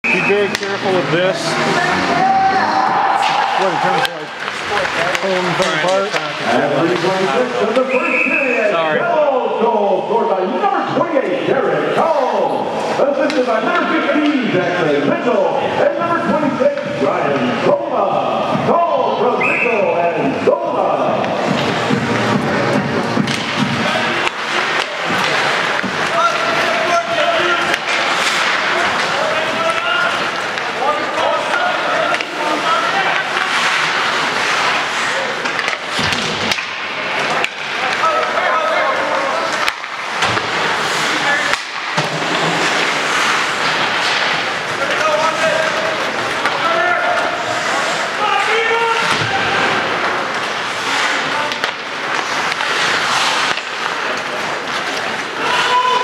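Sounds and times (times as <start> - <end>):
clacks of sticks and puck: 0.0 - 1.7, 3.2 - 7.9, 12.8 - 14.6, 21.2 - 56.0
skates scraping on ice: 0.0 - 7.9, 21.3 - 56.0
spectators talking: 0.0 - 56.0.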